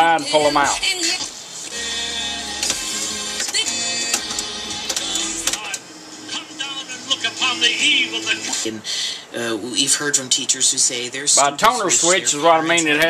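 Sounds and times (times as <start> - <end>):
radio playing music with voice: 0.0 - 13.0.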